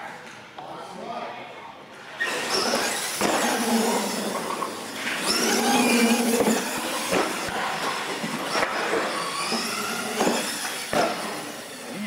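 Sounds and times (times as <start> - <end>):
electric motors whining: 2.2 - 12.0
tyre noise on concrete: 2.2 - 12.0.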